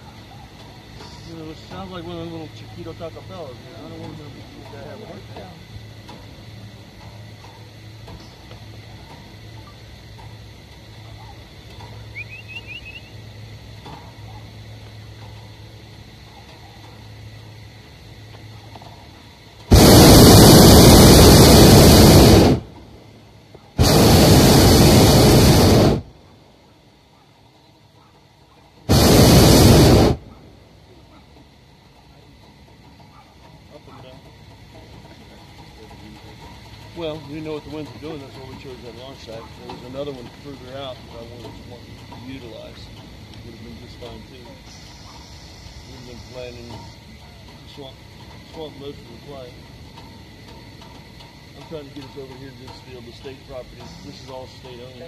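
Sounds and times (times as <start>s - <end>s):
propane burner blasts: 0.0s - 28.0s, 28.7s - 55.0s.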